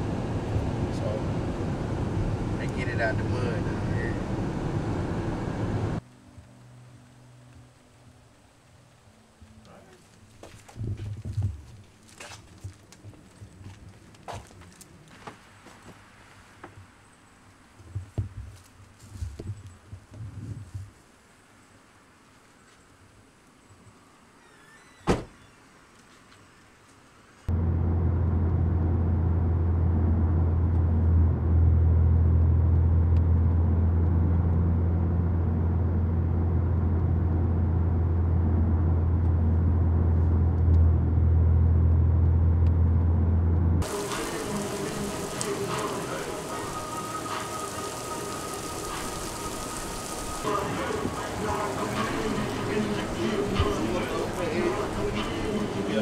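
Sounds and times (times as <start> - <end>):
low hum inside driving car: 0.0 - 6.0, 27.5 - 46.6.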